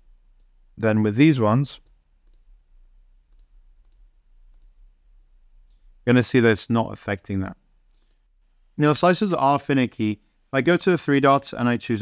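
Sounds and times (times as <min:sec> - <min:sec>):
faint computer mouse clicks: 0:01.8 - 0:02.5, 0:03.3 - 0:04.8, 0:07.9 - 0:08.3.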